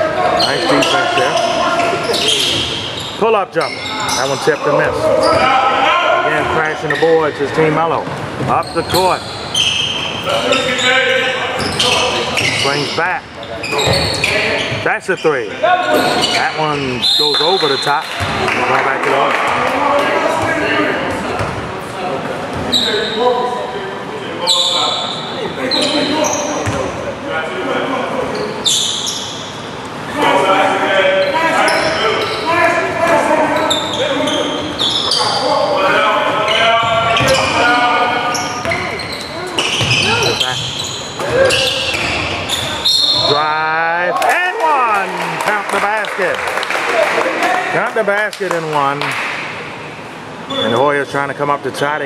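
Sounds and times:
sneakers squeaking: 0.0s - 23.8s, 24.4s - 27.2s, 27.9s - 30.2s, 31.1s - 43.5s, 50.3s - 51.0s
basketball dribbling: 39.7s - 40.6s.

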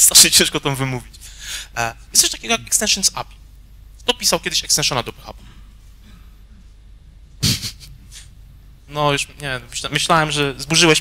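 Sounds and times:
low room hum: 0.0s - 11.0s
person laughing into microphone: 7.4s - 8.3s.

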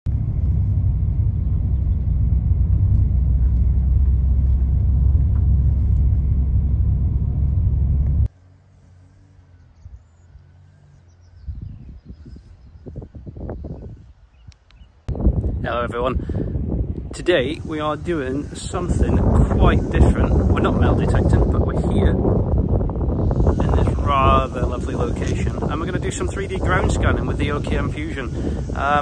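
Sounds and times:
wind buffeting microphone: 0.1s - 8.3s, 11.1s - 29.0s.

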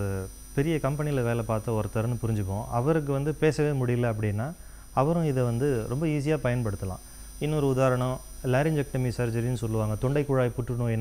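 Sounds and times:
low mains hum: 0.0s - 11.0s
man speaking: 0.0s - 11.0s.

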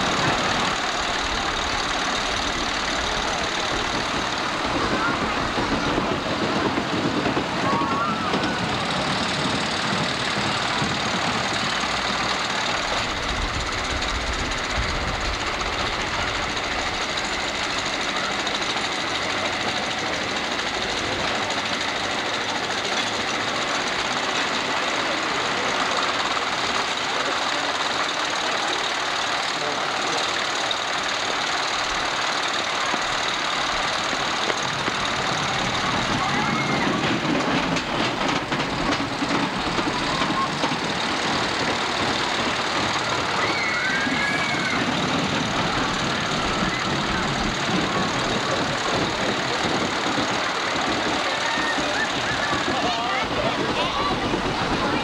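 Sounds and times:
crowd chatter: 0.0s - 55.0s
mechanical noise of rides: 0.0s - 55.0s.

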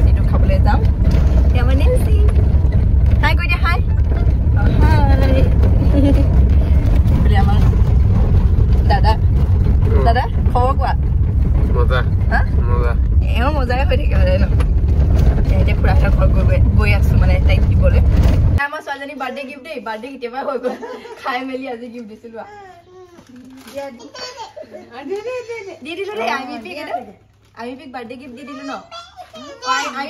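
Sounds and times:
car engine and road rumble: 0.0s - 18.6s.

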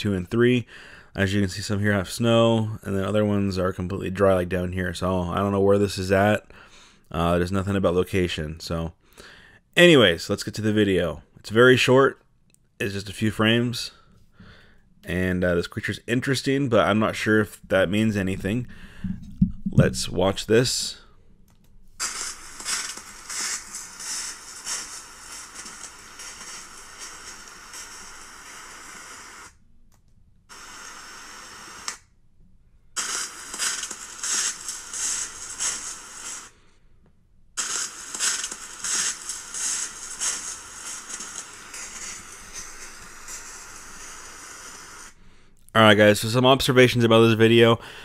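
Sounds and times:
steady microphone hiss: 0.0s - 9.0s, 9.7s - 14.3s, 15.0s - 29.8s, 37.6s - 48.0s.

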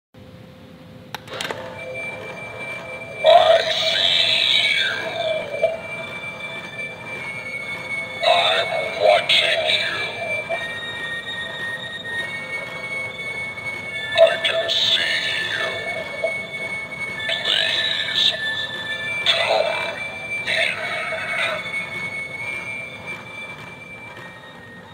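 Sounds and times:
steady high tone: 1.3s - 24.9s
doorbell screeching bursts: 1.4s - 24.9s.

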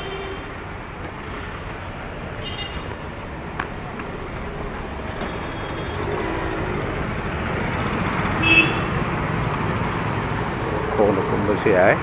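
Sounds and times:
road traffic: 0.0s - 12.0s
wind: 0.0s - 12.0s
vehicle horn toot: 2.4s - 2.9s, 8.4s - 9.0s.

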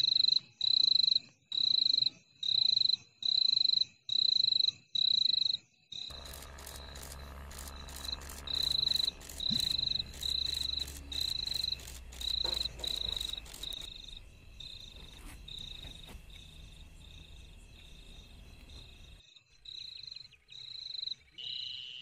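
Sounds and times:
cricket chirping: 0.0s - 22.0s
fine ticking: 6.1s - 13.9s.

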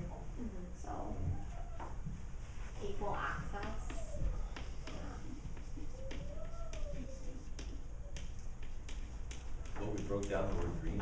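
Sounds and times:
low room hum: 0.0s - 11.0s
chalk tapping on chalkboard: 2.9s - 11.0s.

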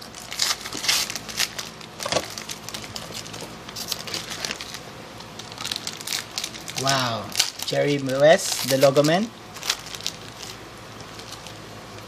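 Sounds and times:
foil wrapper crinkling and tearing: 0.0s - 12.0s.

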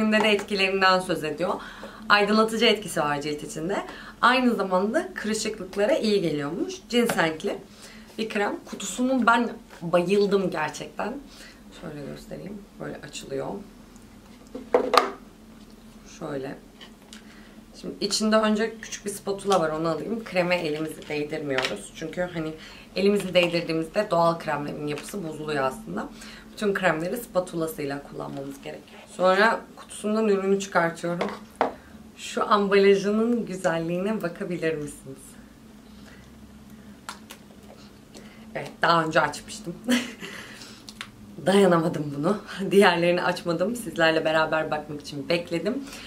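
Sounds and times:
faint steady hum: 0.0s - 46.0s.

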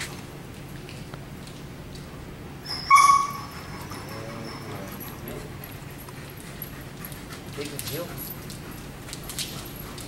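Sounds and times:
dog whining: 2.6s - 6.1s.

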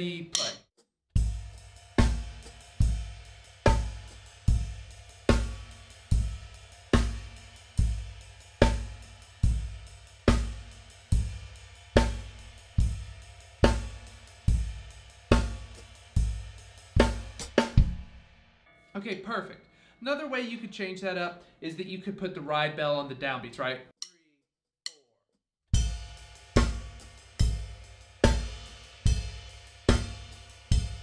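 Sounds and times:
bass drum: 1.2s - 18.2s, 25.8s - 31.0s
ride cymbal: 1.2s - 18.3s, 25.8s - 31.0s.

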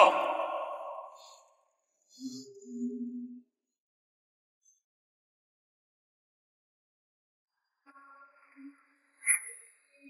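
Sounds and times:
man's voice with echo: 0.0s - 1.2s.

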